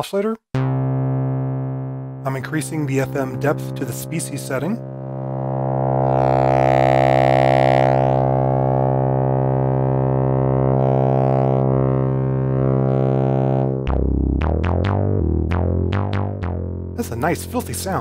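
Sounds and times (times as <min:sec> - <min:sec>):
distorted synthesizer drone: 0:00.6 - 0:18.0.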